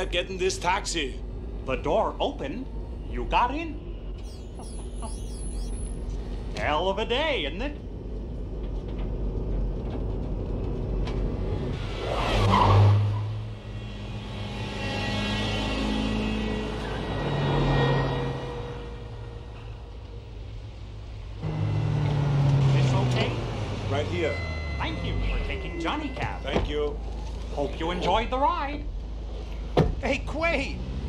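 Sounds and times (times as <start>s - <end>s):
road noise: 0.0s - 31.0s
vehicle motor hum: 3.8s - 31.0s.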